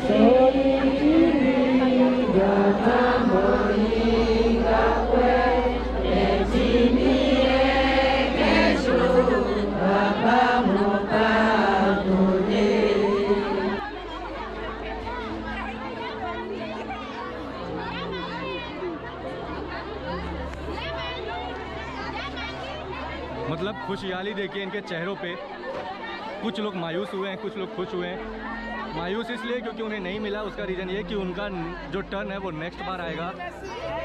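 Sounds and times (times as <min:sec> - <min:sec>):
group of voices chanting: 0:00.0 - 0:13.8
crowd chatter: 0:00.0 - 0:34.0.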